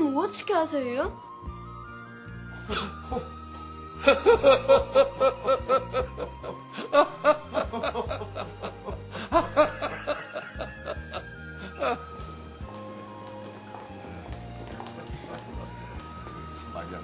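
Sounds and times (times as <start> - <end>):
soft background music: 0.0 - 17.0
elderly man laughing: 2.7 - 3.4, 4.0 - 12.2.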